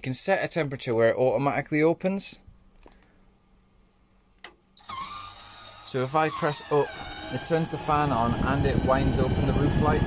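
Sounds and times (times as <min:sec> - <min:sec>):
electric fan motor whining: 0:04.8 - 0:10.0.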